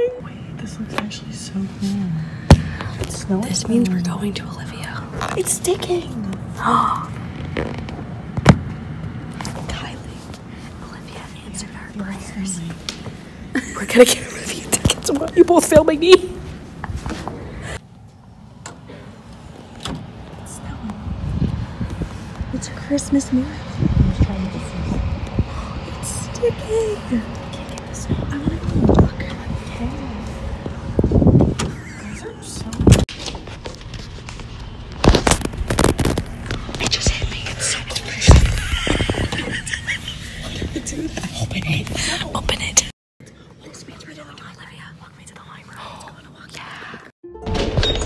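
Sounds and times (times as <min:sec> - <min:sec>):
young women's voices: 0:00.0 - 0:07.2, 0:10.8 - 0:12.9, 0:13.5 - 0:16.5, 0:22.5 - 0:25.1, 0:25.8 - 0:30.4, 0:31.8 - 0:33.0
quiet whispering voices: 0:27.2 - 0:30.4, 0:40.4 - 0:47.1.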